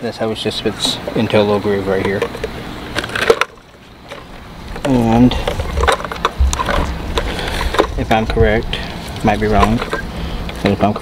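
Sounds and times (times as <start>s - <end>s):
faint handling noise: 0.8s - 11.0s.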